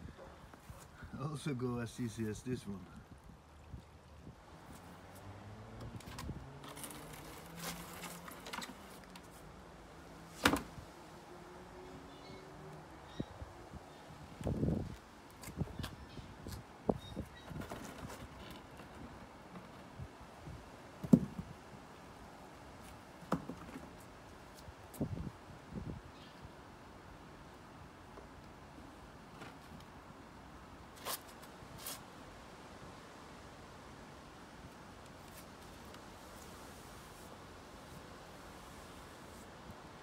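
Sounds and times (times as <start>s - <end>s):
knocks and thuds on concrete: 21.0s - 21.5s, 23.2s - 23.9s.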